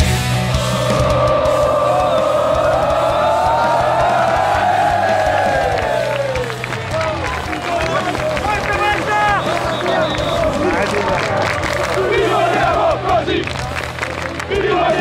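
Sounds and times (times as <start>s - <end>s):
crowd chanting and shouting: 0.3s - 15.0s.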